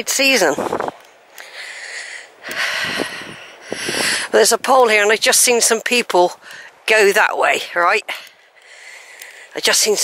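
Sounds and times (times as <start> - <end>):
person breathing hard: 1.4 - 4.3, 8.1 - 9.5.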